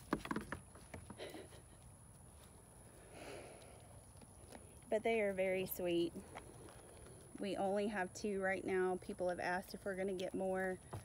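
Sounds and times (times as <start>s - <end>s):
goat hooves knocking on wood: 0.0s - 1.2s.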